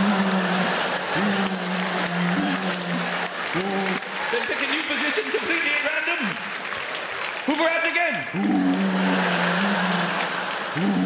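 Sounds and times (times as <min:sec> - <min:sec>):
man humming a drone: 0:00.0 - 0:04.0
audience laughter: 0:00.0 - 0:06.1, 0:08.5 - 0:11.0
applause: 0:00.0 - 0:11.0.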